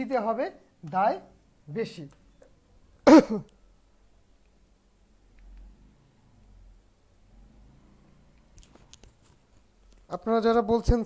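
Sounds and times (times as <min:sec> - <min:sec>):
man clearing his throat: 0:03.0 - 0:03.5.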